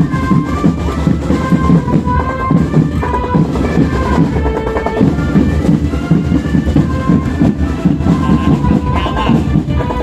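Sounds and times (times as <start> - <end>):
marching band drum beat: 0.0 - 10.0
wind instrument notes: 0.0 - 10.0.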